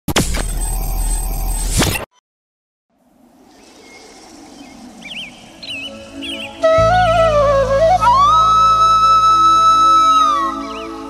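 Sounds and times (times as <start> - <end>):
birds chirping: 3.1 - 8.3.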